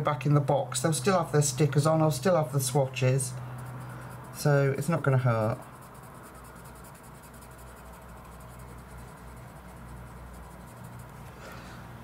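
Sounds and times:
pencil scratching on paper: 3.2s - 11.3s.

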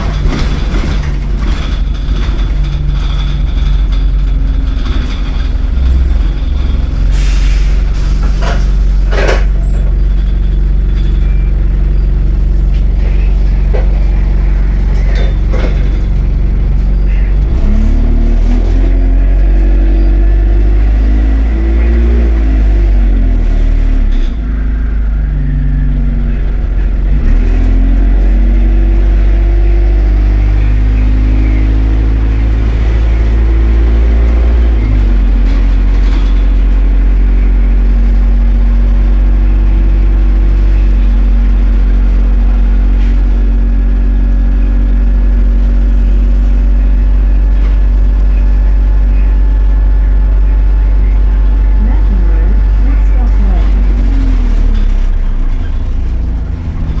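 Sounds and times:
bus engine drone: 0.0s - 57.0s.

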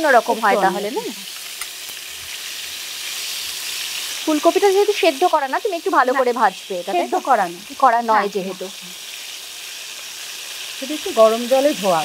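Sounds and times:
florets sizzling in hot oil: 0.0s - 12.0s
spatula turning food: 0.1s - 10.7s.

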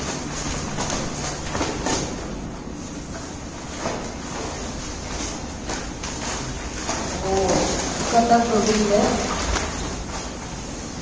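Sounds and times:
plastic bag rustling and crinkling: 0.0s - 11.0s.

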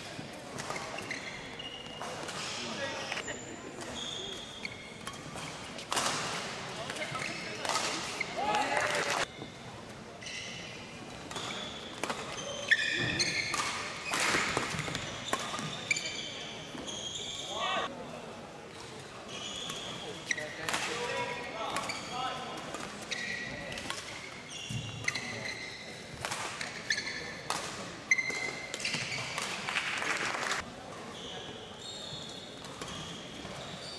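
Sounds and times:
shoes squeaking on court: 0.5s - 6.1s, 6.7s - 17.6s, 19.2s - 20.6s, 21.6s - 29.5s, 30.1s - 33.9s
rackets hitting shuttlecock: 5.0s - 9.3s, 11.2s - 15.8s, 26.1s - 30.5s.

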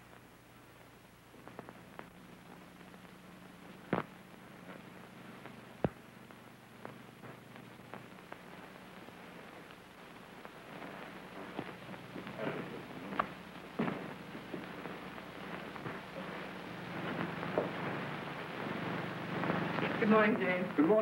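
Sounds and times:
film soundtrack hiss and crackle: 0.0s - 21.0s
footsteps on hard floor: 10.8s - 18.1s.

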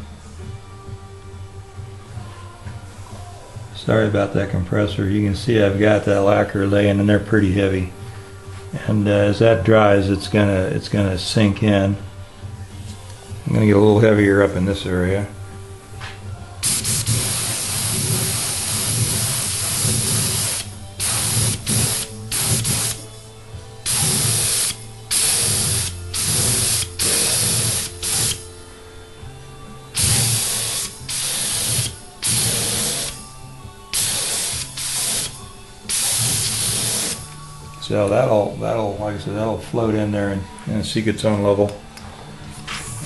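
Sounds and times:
spray gun hissing bursts: 16.6s - 28.6s, 30.0s - 33.3s, 33.9s - 37.3s.

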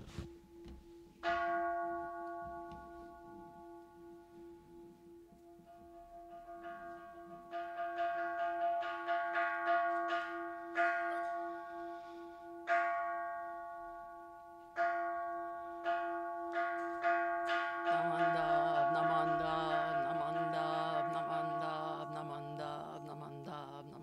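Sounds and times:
temple bell strikes ringing: 1.2s - 24.0s.

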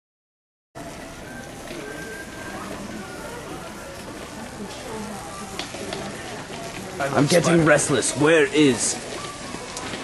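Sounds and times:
faint distant voices: 0.8s - 10.0s
store background hiss: 0.8s - 10.0s.

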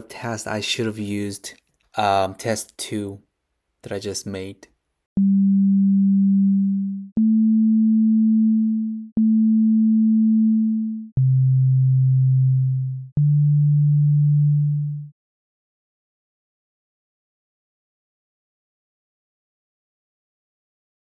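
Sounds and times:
synthesizer sine tones: 5.2s - 15.2s.

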